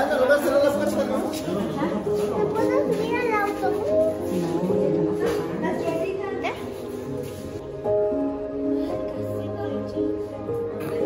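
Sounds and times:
people talking: 0.0 - 7.2
background music with held notes: 0.0 - 11.0
child talking: 2.4 - 4.2, 8.9 - 11.0.

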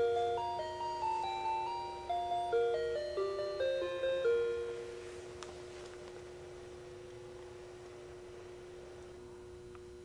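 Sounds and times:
musical clock playing chime melody: 0.0 - 5.2.

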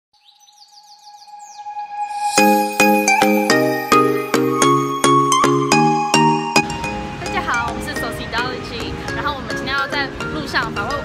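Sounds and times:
bird chirping: 0.2 - 8.2
steady held tone: 1.5 - 8.8.

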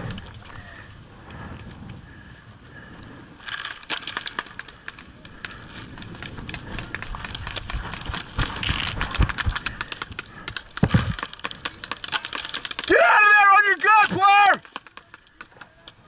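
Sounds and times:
paintballs rattling in hopper: 3.4 - 15.4
footsteps on dirt: 5.4 - 10.0.

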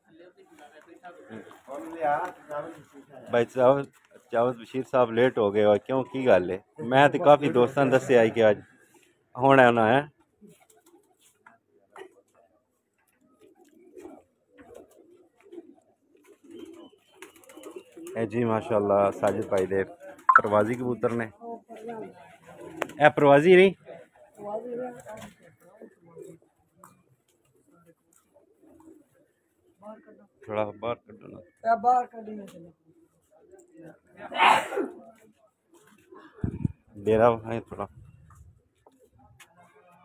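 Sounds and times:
pigeons cooing softly: 0.0 - 4.3, 10.1 - 20.3, 21.6 - 37.0
pigeons cooing: 13.3 - 20.2, 25.0 - 27.0, 27.6 - 30.2, 35.7 - 36.9
person speaking: 20.3 - 20.7.

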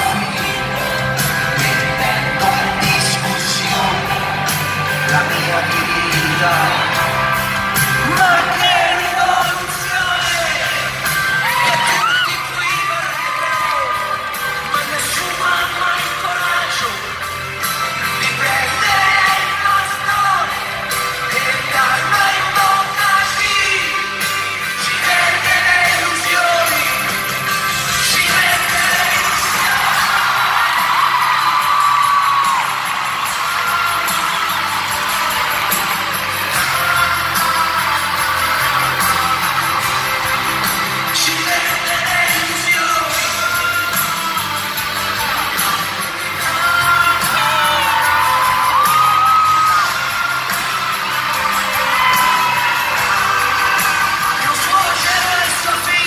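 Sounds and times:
crowd whooping and cheering: 0.0 - 56.0
live pop-rock band: 0.0 - 56.0.

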